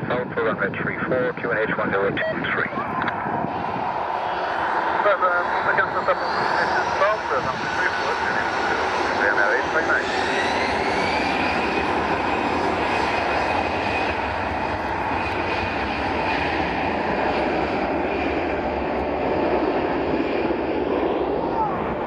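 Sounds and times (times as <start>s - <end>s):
jet engines running loudly: 0.0s - 22.0s.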